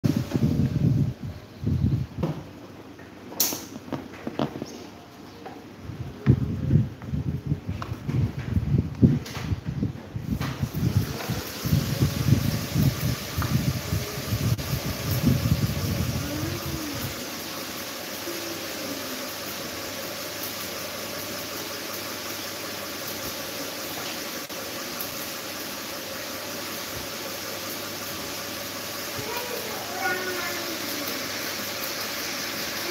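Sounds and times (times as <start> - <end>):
air buffeting microphone: 0.0 - 2.6, 5.7 - 17.3
electric fans rushing air: 0.0 - 32.9
faint motor hum: 4.4 - 32.9.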